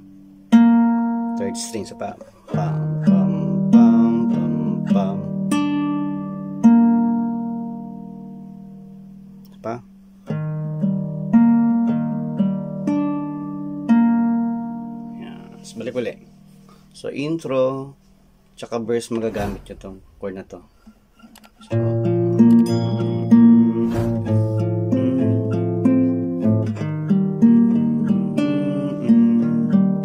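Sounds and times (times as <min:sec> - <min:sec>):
classical guitar fingerpicked slowly: 0:00.0 - 0:16.9, 0:20.8 - 0:30.0.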